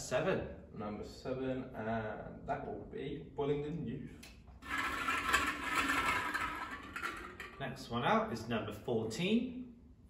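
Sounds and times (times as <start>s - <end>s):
plastic balls rattling in glass bowl: 4.6s - 7.6s.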